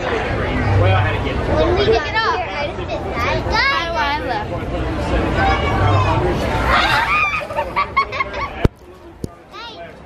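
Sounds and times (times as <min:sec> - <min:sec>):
crowd noise: 0:00.0 - 0:10.0
children shouting or laughing: 0:05.4 - 0:08.0.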